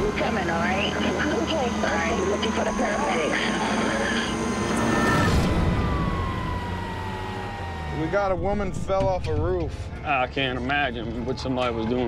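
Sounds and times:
siren falling wail: 0:00.0 - 0:09.4
low vehicle rumble: 0:00.0 - 0:12.0.

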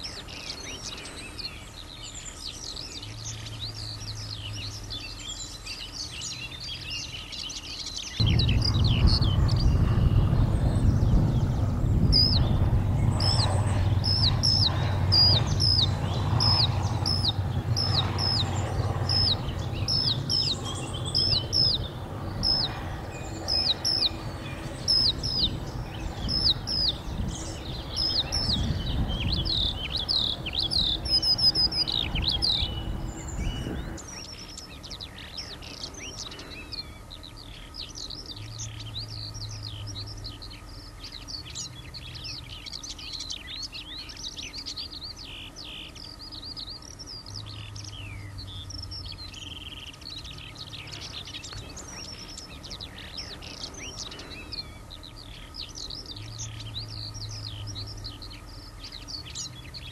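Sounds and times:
distant road traffic rumble: 0:00.0 - 0:59.9
skylark singing: 0:00.0 - 0:59.9.

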